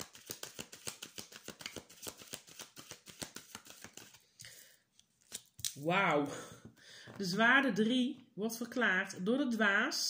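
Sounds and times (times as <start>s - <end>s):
cards being shuffled: 0.0s - 5.8s.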